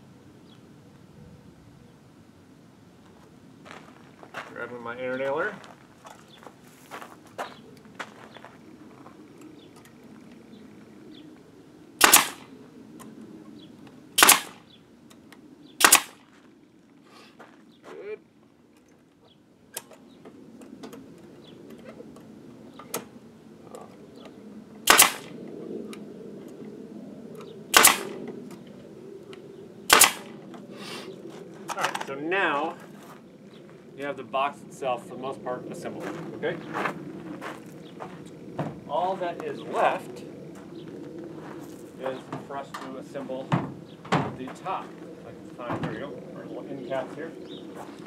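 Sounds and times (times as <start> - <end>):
pneumatic nailer shots: 12.0 - 12.5, 14.2 - 14.6, 15.8 - 16.2, 24.8 - 25.3, 27.7 - 28.2, 29.9 - 30.3.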